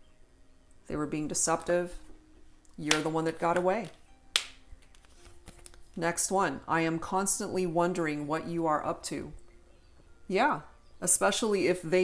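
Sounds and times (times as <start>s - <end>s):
card snapped against deck: 2.9s - 3.2s, 3.8s - 5.8s.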